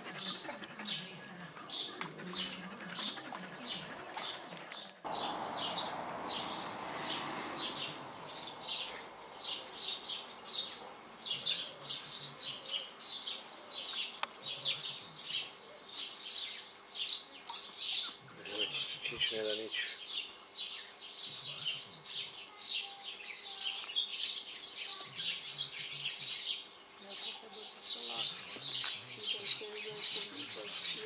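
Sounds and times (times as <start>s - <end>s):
small birds chirping: 0.0s - 31.0s.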